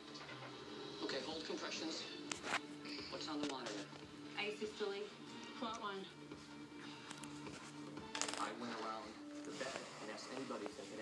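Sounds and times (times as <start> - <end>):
background music with low notes: 0.0 - 11.0.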